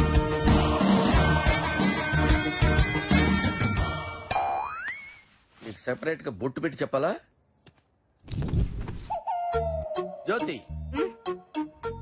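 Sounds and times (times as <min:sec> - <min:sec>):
background music: 0:00.0 - 0:04.5, 0:09.1 - 0:12.0
rising cartoon whistle tone: 0:09.1 - 0:11.1
man speaking: 0:10.2 - 0:10.7.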